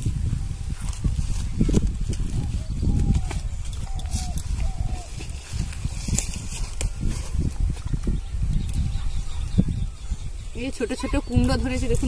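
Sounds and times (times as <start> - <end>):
leaves rustling: 0.0 - 12.0.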